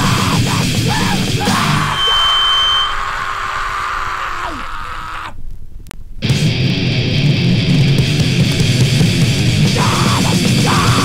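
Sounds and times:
distorted punk band: 0:00.0 - 0:03.3, 0:06.2 - 0:11.0
shouted vocal: 0:00.0 - 0:05.4, 0:09.6 - 0:11.0.

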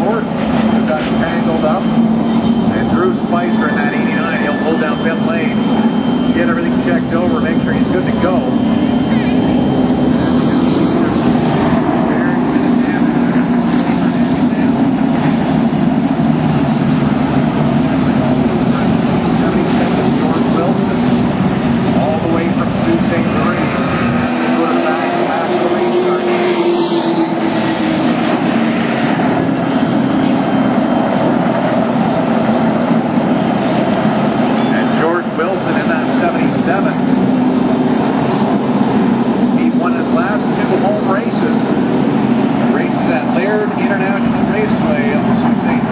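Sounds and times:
race car engines droning: 0:00.0 - 0:45.9.

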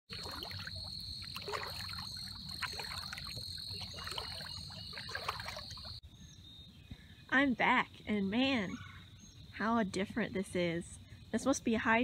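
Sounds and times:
water trickling and gurgling: 0:00.1 - 0:06.0.

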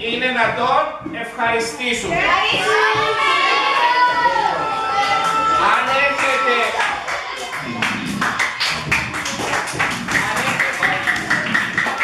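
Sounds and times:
voices: 0:00.0 - 0:12.0
audience applauding: 0:04.9 - 0:12.0.

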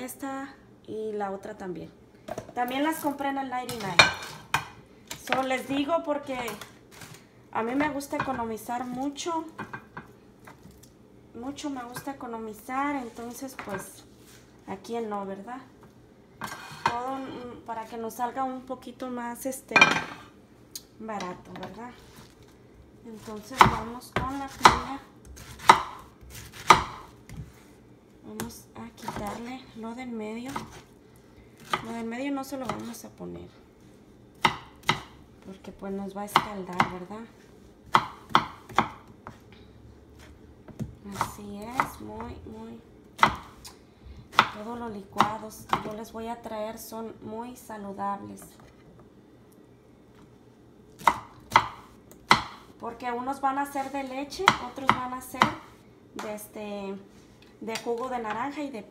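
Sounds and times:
knife chopping on wooden board: 0:23.2 - 0:27.5, 0:30.5 - 0:30.8, 0:34.4 - 0:35.1, 0:37.8 - 0:39.4, 0:40.2 - 0:42.0, 0:43.2 - 0:43.7, 0:44.3 - 0:46.0, 0:51.0 - 0:52.7, 0:53.8 - 0:55.7.

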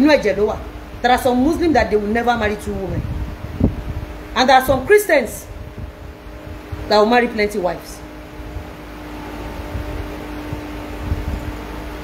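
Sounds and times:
machine humming: 0:00.0 - 0:12.0.

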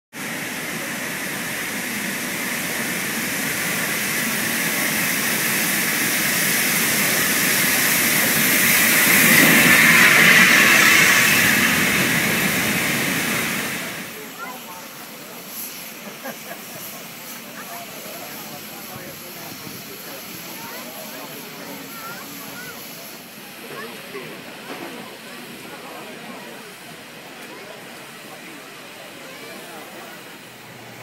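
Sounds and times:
steam locomotive hissing steam: 0:00.1 - 0:31.0.

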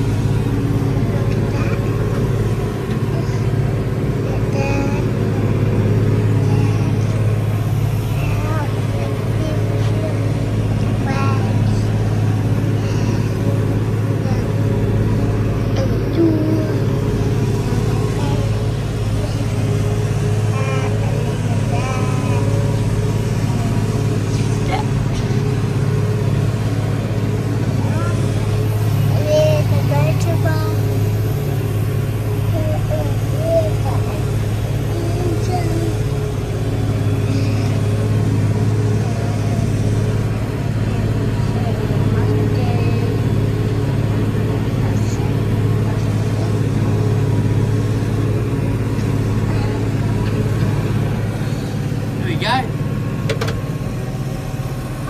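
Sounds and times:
forage harvester droning: 0:00.0 - 0:55.0
tractor engine: 0:00.0 - 0:55.0.

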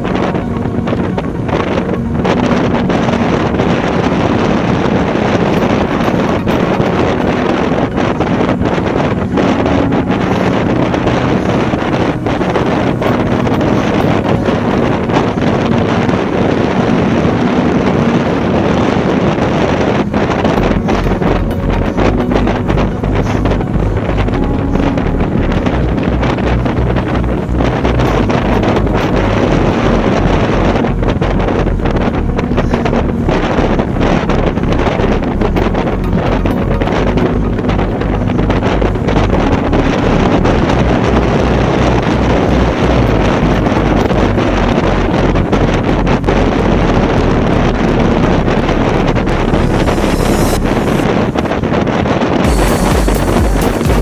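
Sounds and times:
fast low flutter: 0:00.0 - 0:54.0
wind buffeting microphone: 0:00.0 - 0:54.0.

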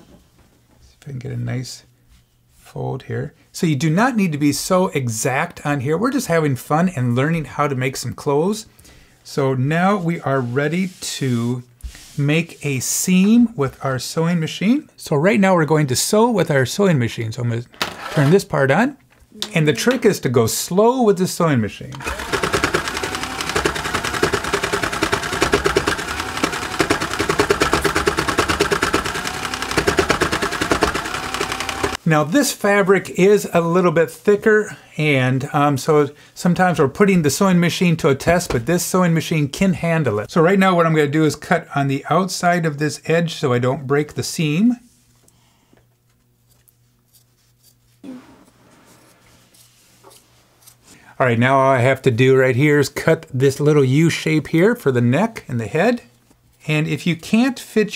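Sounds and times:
faint motor whine: 0:21.8 - 0:32.0
toy sewing machine needles clattering: 0:22.0 - 0:32.0.

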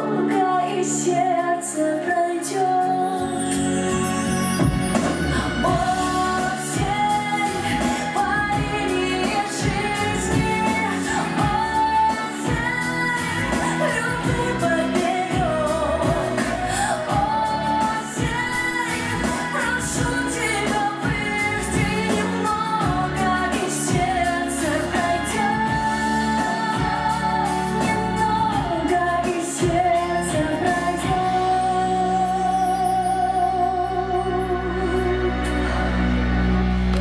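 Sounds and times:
pop accompaniment with steady beat: 0:00.0 - 0:35.8
woman singing into microphone: 0:00.0 - 0:35.9.

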